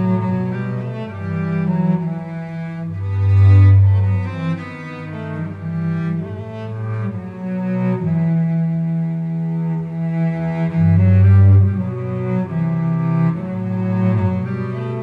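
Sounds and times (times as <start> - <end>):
solo cello hymn melody: 0.0 - 15.0.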